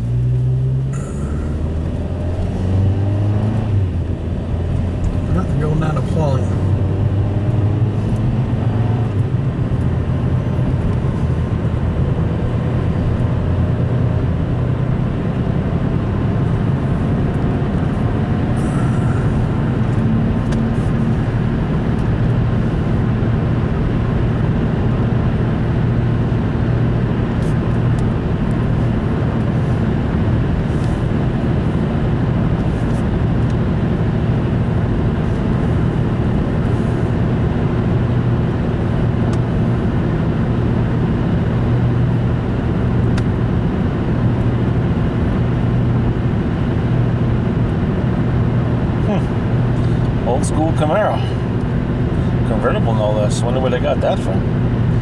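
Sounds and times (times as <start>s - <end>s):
low engine hum: 0.0s - 55.0s.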